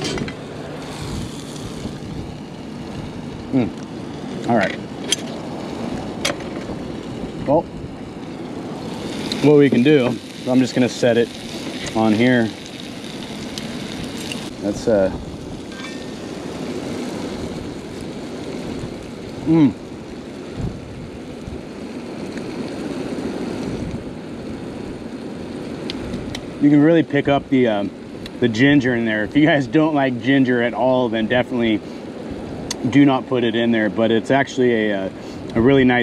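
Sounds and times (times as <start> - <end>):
wind buffeting microphone: 0.0 - 26.6
fish sizzling in a skillet: 0.0 - 26.8.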